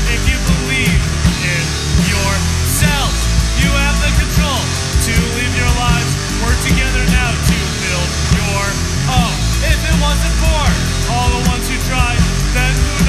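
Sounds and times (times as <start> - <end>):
bending electric guitar lead: 0.0 - 13.0
hard rock band playing: 0.0 - 13.0.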